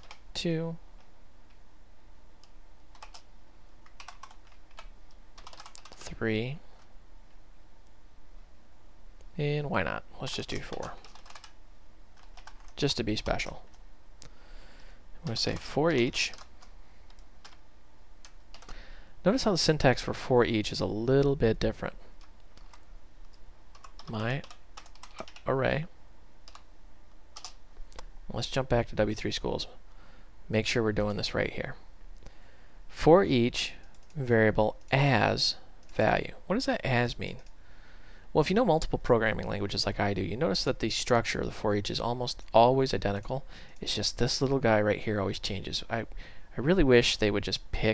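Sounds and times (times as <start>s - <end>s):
typing on keyboard: 0.0s - 0.2s, 2.4s - 6.0s, 10.5s - 11.6s, 12.2s - 13.5s, 15.2s - 17.6s, 18.2s - 18.8s, 23.7s - 25.5s, 26.5s - 26.7s, 27.4s - 27.6s, 33.9s - 34.2s.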